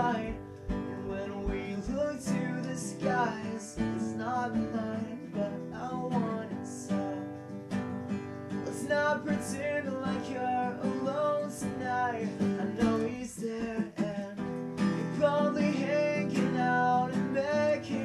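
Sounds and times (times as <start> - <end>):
young man singing: 0.0 - 7.8, 8.6 - 18.0
acoustic guitar strumming: 0.0 - 18.0.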